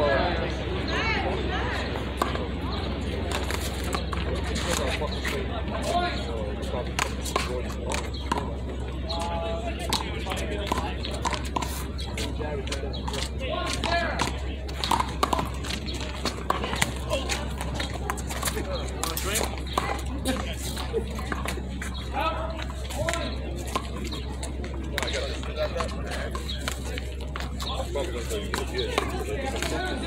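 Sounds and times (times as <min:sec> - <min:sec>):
people talking: 0:00.0 - 0:30.0.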